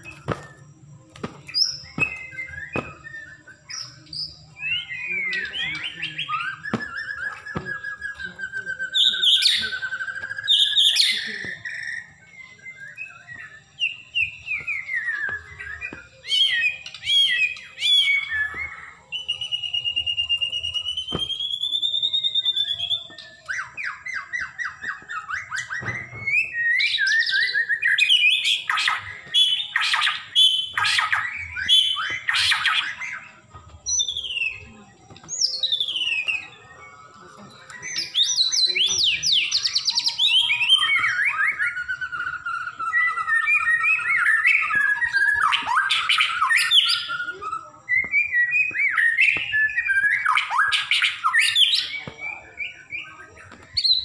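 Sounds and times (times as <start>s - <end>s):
bird singing whistles and trills: 0.0s - 54.0s
long wavering bird whistle: 0.0s - 54.0s.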